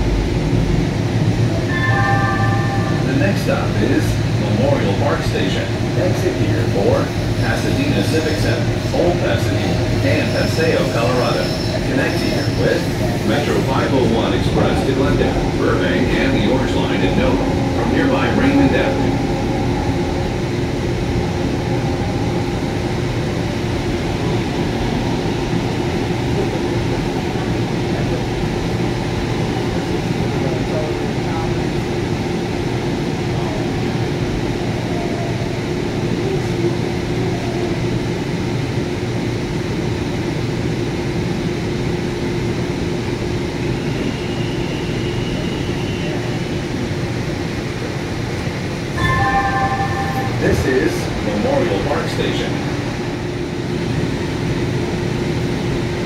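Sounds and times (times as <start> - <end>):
constant hum: 0.0 - 43.2
wheels rumbling on rail: 0.0 - 56.0.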